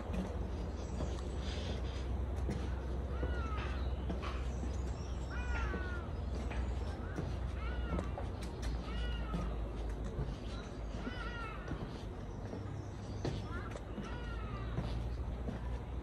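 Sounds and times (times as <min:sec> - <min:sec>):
bird calling: 0:00.0 - 0:16.0.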